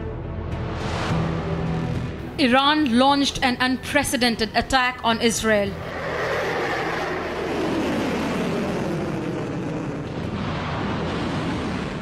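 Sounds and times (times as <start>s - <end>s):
projectile roaring overhead: 5.7s - 12.0s.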